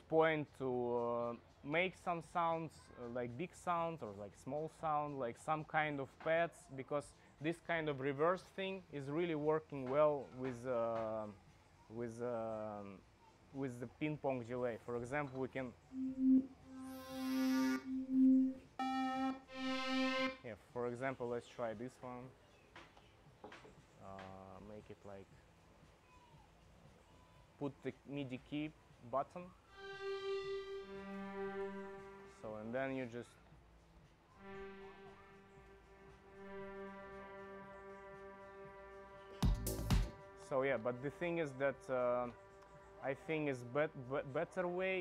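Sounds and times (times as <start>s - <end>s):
synthesizer pad with filter sweep: 15.9s - 20.4s, 34.4s - 39.4s.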